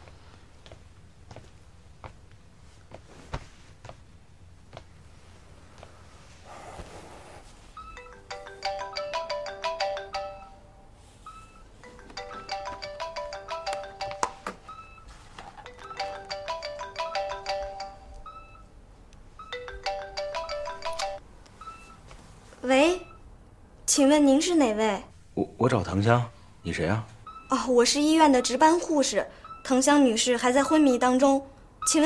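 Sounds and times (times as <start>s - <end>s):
phone melodic ringtone: 7.8s - 18.7s, 19.4s - 22.0s.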